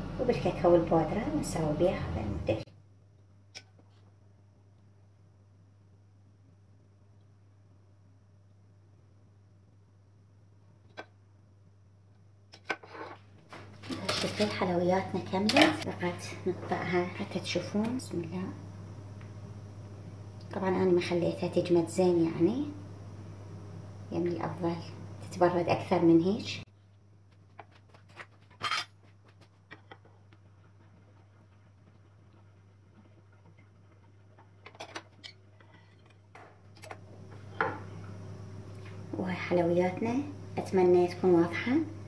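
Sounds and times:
woman speaking: 0.2 - 2.7, 13.8 - 18.6, 20.5 - 22.8, 24.1 - 26.7, 39.1 - 42.0.

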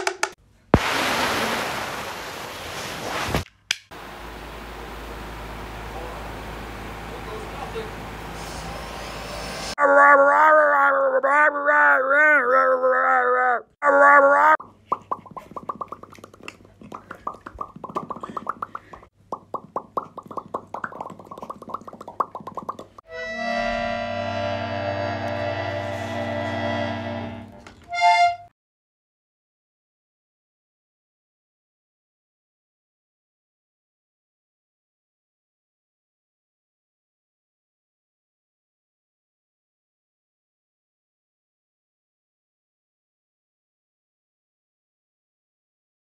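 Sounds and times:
click: 3.5 - 3.9
television static hiss: 4.0 - 8.3.

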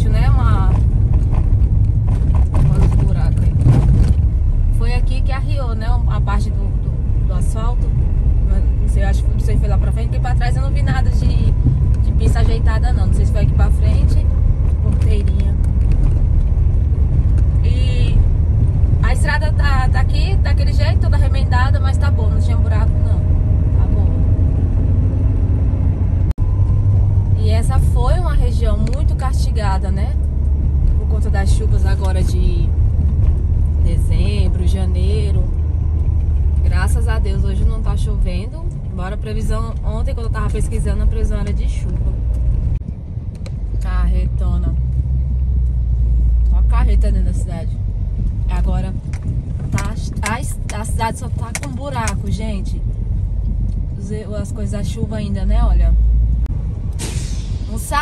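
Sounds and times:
car driving rumble from inside: 0.0 - 58.0.

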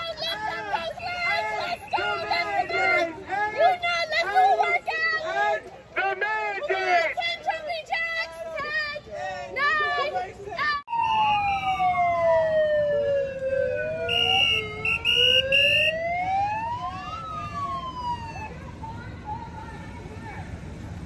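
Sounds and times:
emergency sirens wailing: 0.0 - 5.4, 10.8 - 21.0.

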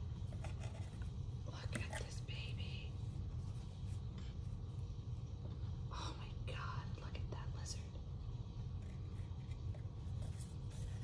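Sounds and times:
steady low rumble: 0.0 - 11.0
person whispering: 1.4 - 3.0, 5.9 - 8.0.

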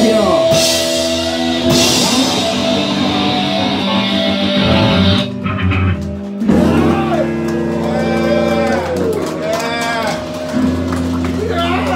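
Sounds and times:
bass guitar: 0.0 - 11.9
ringing electric guitar: 0.0 - 11.9.

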